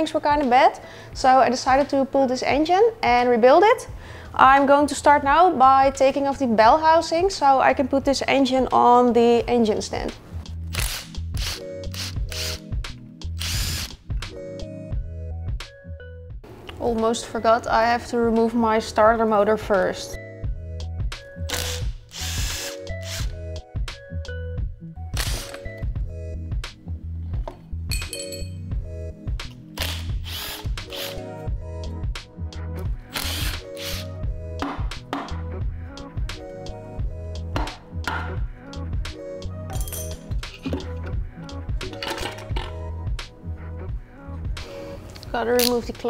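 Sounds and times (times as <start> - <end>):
background music with bass line: 3.8 - 16.5, 18.2 - 46.0
power tool bursts: 13.4 - 13.9, 21.5 - 23.4, 33.1 - 34.0
tools clinking on metal: 27.9 - 28.6, 39.7 - 40.9, 41.9 - 42.8.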